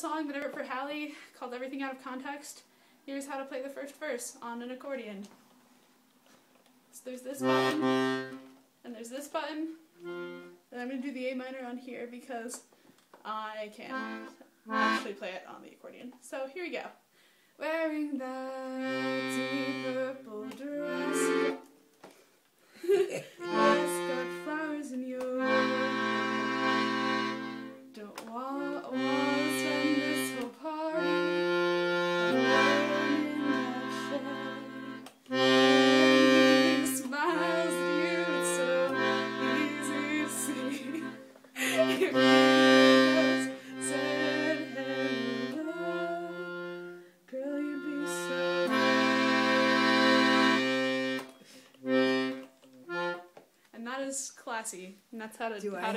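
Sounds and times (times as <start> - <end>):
accordion playing chords: 7.4 - 8.6, 10.0 - 10.7, 13.9 - 15.2, 18.6 - 21.8, 23.4 - 53.4.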